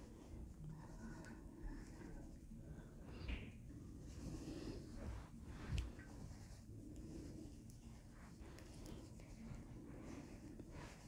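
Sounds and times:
knitting needles working yarn: 0:00.0 - 0:11.0.

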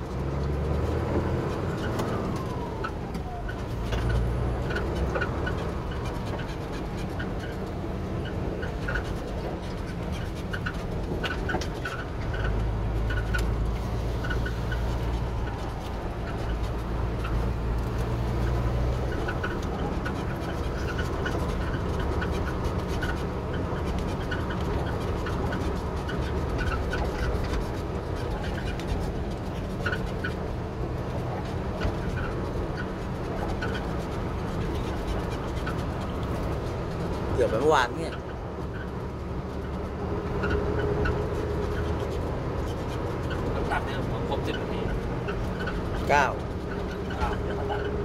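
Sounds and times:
rattles and squeaks in cab: 0:00.0 - 0:48.0
vehicle engine running: 0:00.0 - 0:48.0.

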